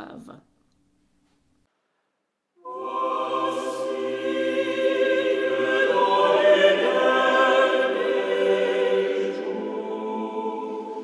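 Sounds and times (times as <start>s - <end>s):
choir singing held chords: 2.6s - 11.0s.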